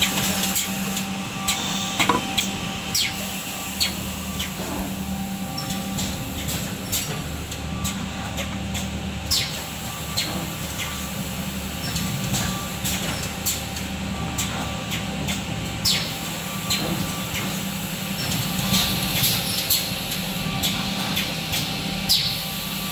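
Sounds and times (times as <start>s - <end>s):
machine motor hum: 0.0s - 7.2s.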